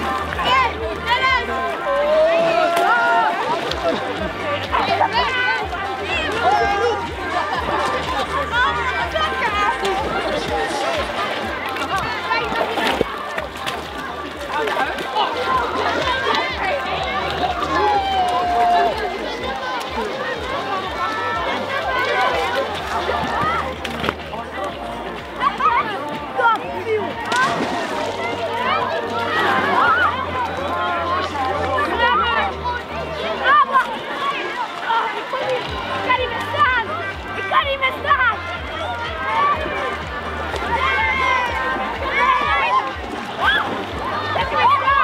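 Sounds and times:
crowd talking and calling out: 0:00.0 - 0:45.0.

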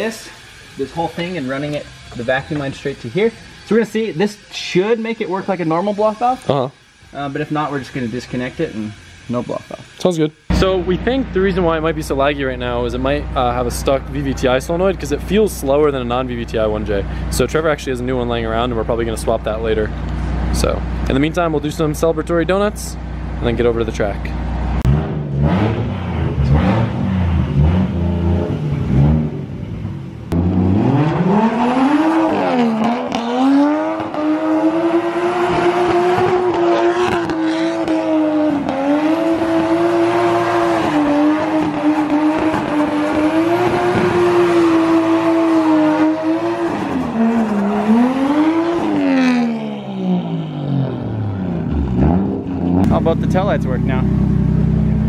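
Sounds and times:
car engine revving hard: 0:10.5 - 0:55.0.

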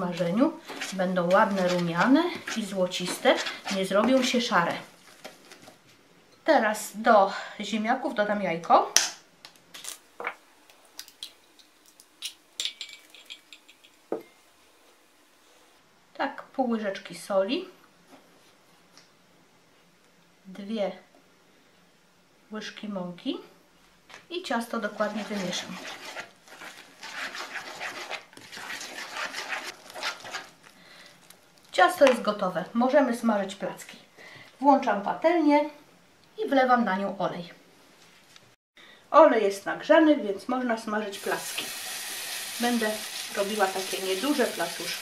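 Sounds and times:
stirring wet batter in plastic bowl: 0:00.0 - 0:05.8, 0:24.5 - 0:32.3
egg cracking: 0:10.7 - 0:14.1.

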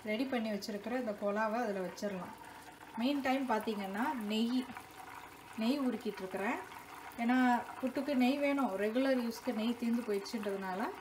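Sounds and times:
butter bubbling in a saucepan: 0:00.0 - 0:11.0.

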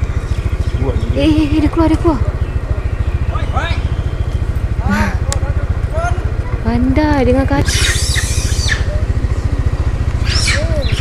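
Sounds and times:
motorbike engine idling: 0:00.0 - 0:11.0
high chirps: 0:07.6 - 0:11.0.

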